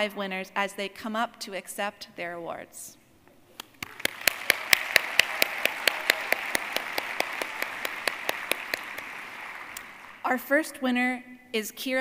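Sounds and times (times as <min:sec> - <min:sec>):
crowd applause: 0:03.8 - 0:10.2.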